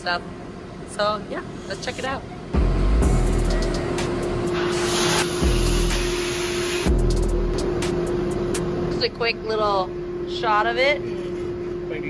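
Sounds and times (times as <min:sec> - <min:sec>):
sandblaster nozzle hissing: 0:01.5 - 0:02.2, 0:04.6 - 0:06.9
background music: 0:02.6 - 0:08.6.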